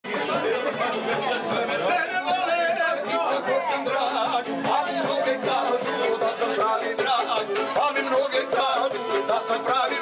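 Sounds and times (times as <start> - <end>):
murmur of chatter: 0.0 - 10.0.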